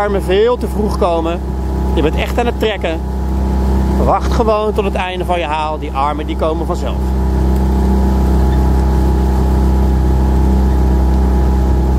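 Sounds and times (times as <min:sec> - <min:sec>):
outboard motor running: 0:00.0 - 0:11.9.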